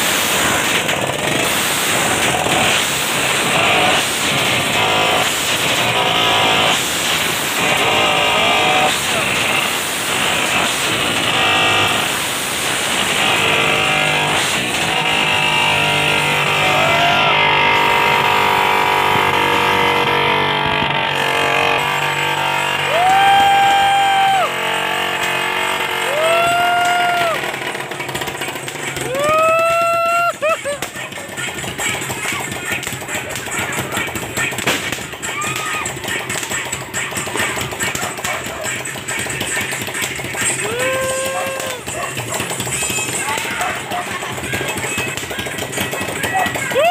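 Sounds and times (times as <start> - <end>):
firecrackers crackling and popping: 0.0 - 46.9.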